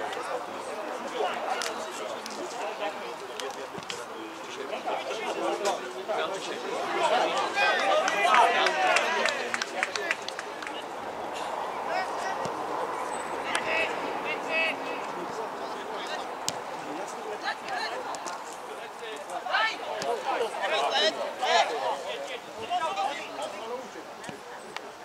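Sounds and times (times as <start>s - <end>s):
players shouting: 6.2s - 23.6s.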